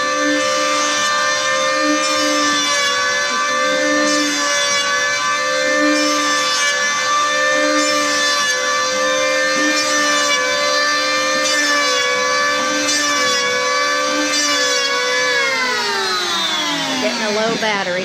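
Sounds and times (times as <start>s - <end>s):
electric hand planer cutting wood: 0.0s - 18.0s.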